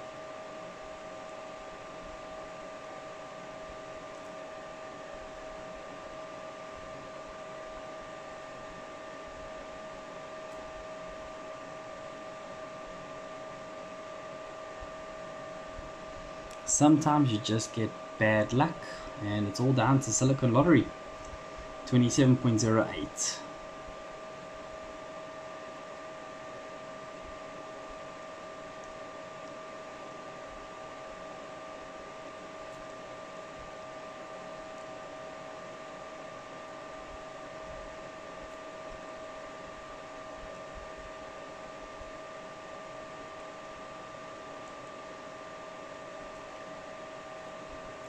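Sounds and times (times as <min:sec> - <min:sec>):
cooling fans whining: 0:00.0 - 0:48.0.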